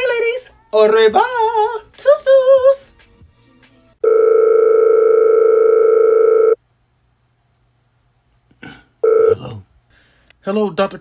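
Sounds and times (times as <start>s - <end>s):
telephone ringing: 4.0s - 6.6s, 9.0s - 9.3s.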